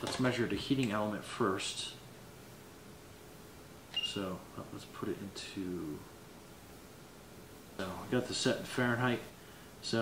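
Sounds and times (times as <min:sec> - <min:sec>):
room hiss: 0:00.0 - 0:10.0
thermometer beep: 0:03.9 - 0:04.2.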